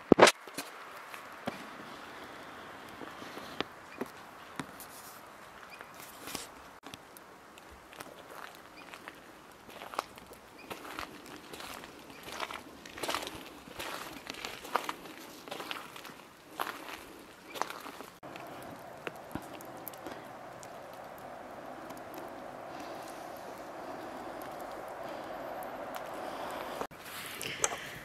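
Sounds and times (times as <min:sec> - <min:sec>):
footsteps on forest trail: 0:07.6 - 0:27.9.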